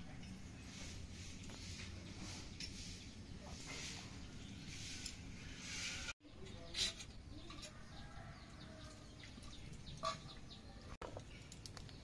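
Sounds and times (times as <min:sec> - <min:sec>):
birds chirping and clucking: 0:00.3 - 0:12.0.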